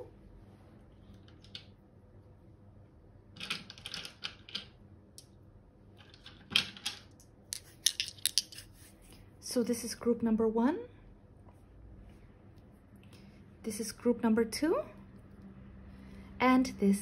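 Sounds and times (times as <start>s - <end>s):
dice clattering in hand: 6.0s - 8.7s.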